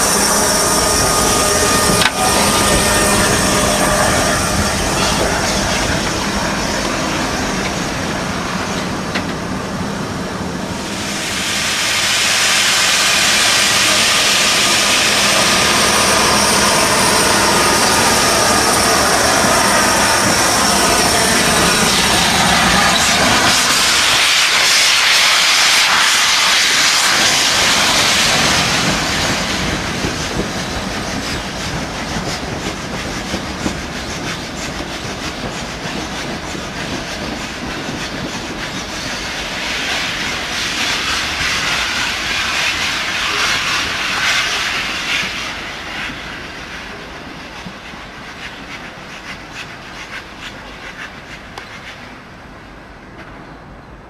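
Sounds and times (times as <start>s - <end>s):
steam locomotive venting steam: 0.0s - 52.7s
train rumbling moving off: 0.0s - 54.0s.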